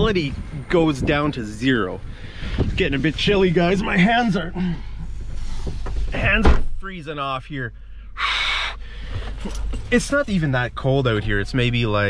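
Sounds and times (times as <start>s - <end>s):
man blowing breath into fist: 7.9s - 9.4s.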